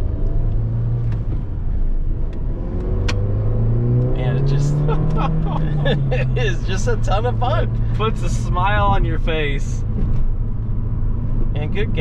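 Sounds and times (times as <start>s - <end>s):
car engine revving: 0.0s - 12.0s.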